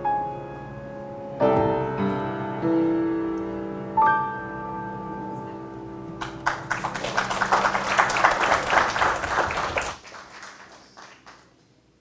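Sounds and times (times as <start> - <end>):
piano notes: 0.0 - 10.0
congregation applauding: 6.2 - 11.7.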